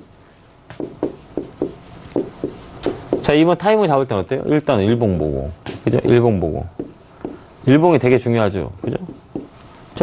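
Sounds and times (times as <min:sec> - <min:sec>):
stylus tapping and scratching screen: 0:00.7 - 0:03.3, 0:05.2 - 0:06.2, 0:06.8 - 0:07.7, 0:09.0 - 0:09.6.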